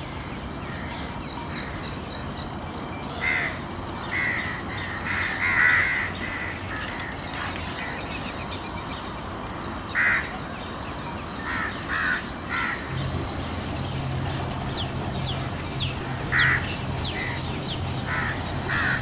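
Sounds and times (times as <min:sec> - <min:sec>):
steady background hiss: 0:00.0 - 0:19.0
bird calls: 0:09.9 - 0:19.0.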